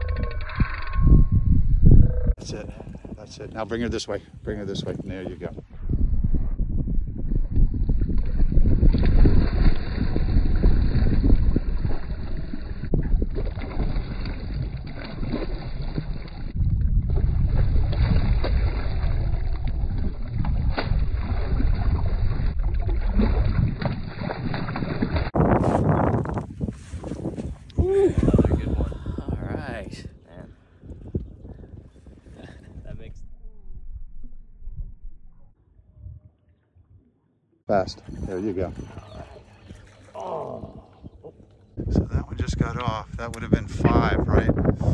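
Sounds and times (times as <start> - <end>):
wind buffeting microphone: 0.0 - 37.0, 37.7 - 44.9.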